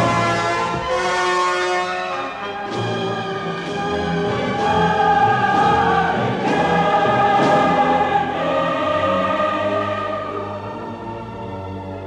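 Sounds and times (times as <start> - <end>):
orchestra: 0.0 - 12.0
choir singing sustained chords: 3.2 - 12.0.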